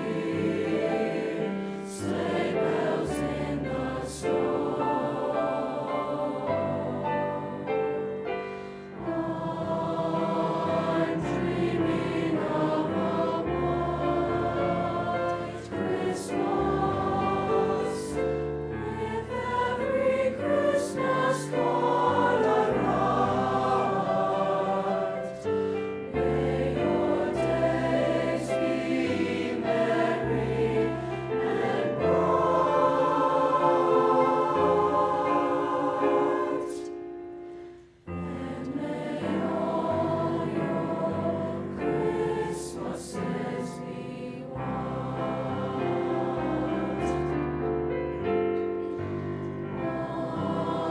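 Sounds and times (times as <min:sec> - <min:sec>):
choir singing sustained chords: 0:00.0 - 0:50.9.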